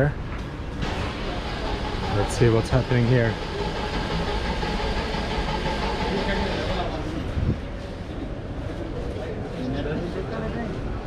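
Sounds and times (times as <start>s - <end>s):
traffic and machinery hum: 0.0s - 11.0s.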